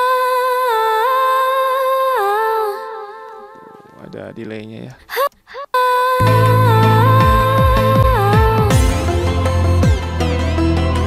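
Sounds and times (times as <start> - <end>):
woman singing long high note: 5.8 - 9.3.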